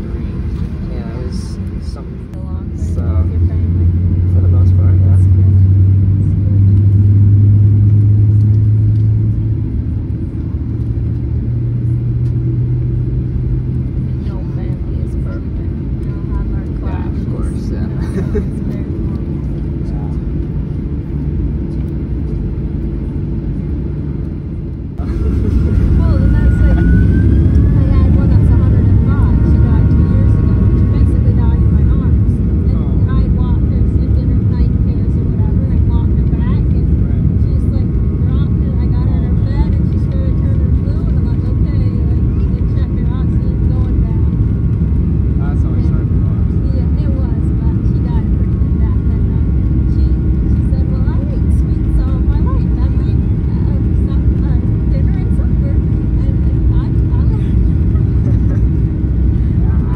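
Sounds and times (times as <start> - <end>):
airplane cabin low rumble: 0.0 - 59.9
jet engine whine: 0.0 - 59.9.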